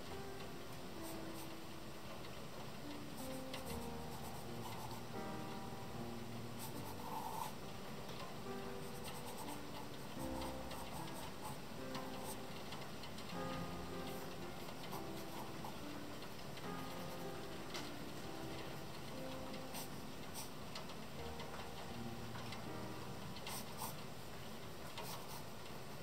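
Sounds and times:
background music: 0:00.0 - 0:24.3.

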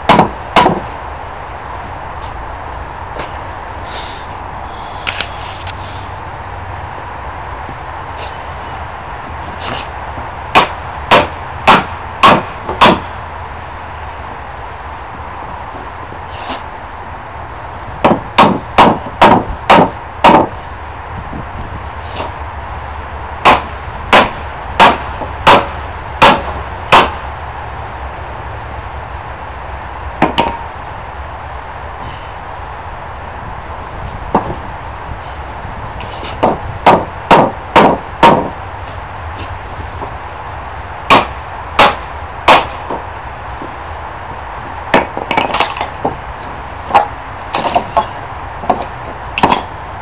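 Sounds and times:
steady background hiss: 0:00.0 - 0:50.0
sharp knock on wood: 0:00.1 - 0:00.8, 0:18.0 - 0:20.5, 0:36.4 - 0:38.5.

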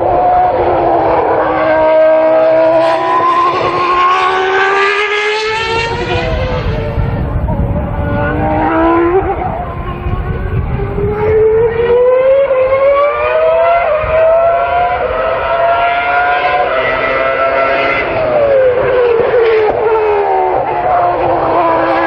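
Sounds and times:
racing car engine at high revs: 0:00.0 - 0:22.0.

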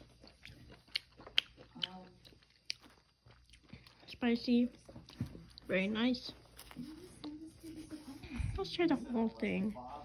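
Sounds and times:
person chewing crispy food: 0:00.0 - 0:05.7.

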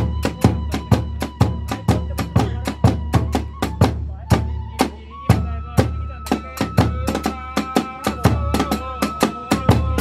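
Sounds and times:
bamboo flute high note: 0:00.0 - 0:10.0.

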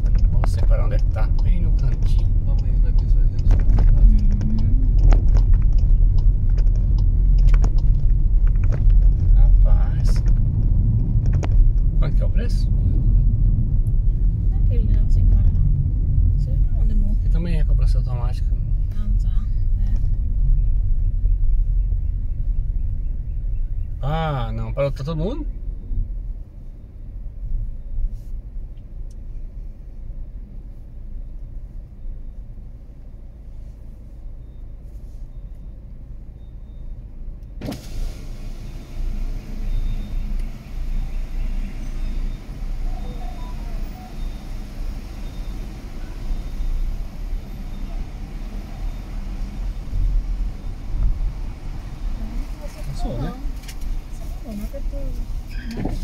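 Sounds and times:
car engine and tyre rumble: 0:00.0 - 0:56.0
outside traffic noise: 0:00.0 - 0:56.0.

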